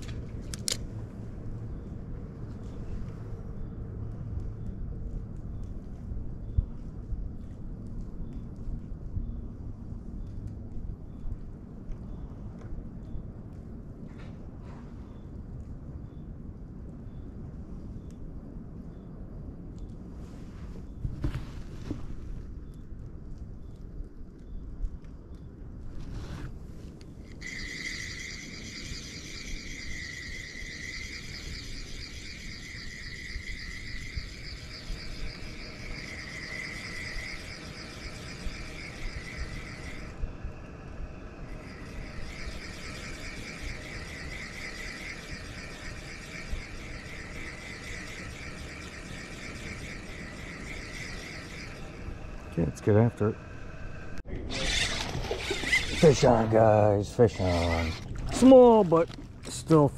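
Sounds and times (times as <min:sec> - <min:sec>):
low rumble: 0:22.0 - 0:54.6
night insects trilling: 0:27.2 - 0:59.9.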